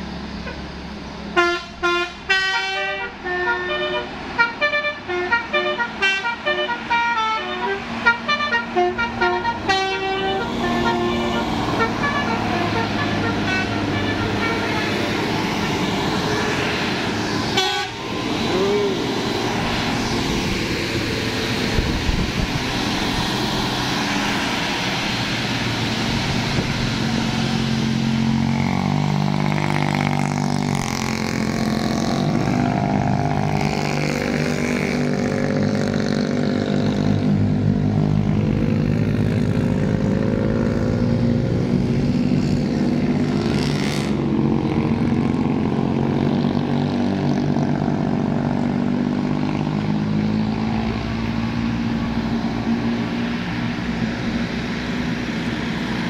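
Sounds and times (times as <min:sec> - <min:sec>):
bus engine and tyres: 0:00.0 - 0:56.0
multi-tone bus horn melody: 0:01.3 - 0:16.6, 0:17.4 - 0:19.0.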